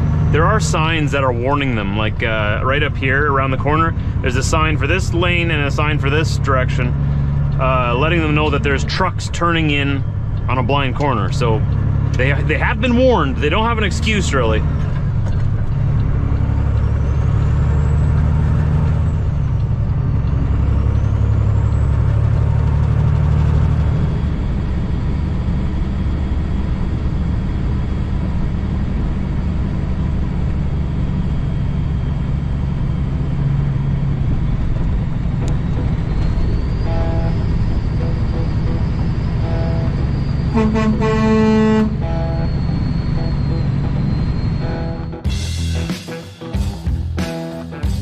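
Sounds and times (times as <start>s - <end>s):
truck diesel engine driving: 0.0s - 48.0s.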